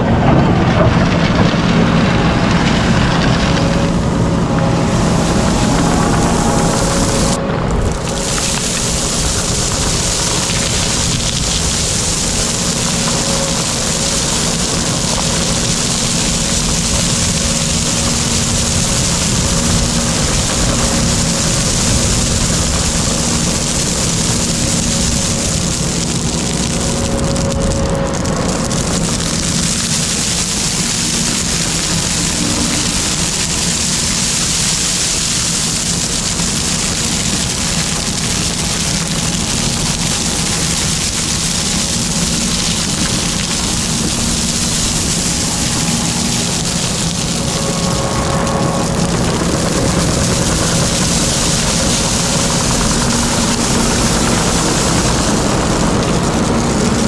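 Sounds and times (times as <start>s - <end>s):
diesel engine running: 0.0s - 57.0s
crushed stone pouring: 0.5s - 57.0s.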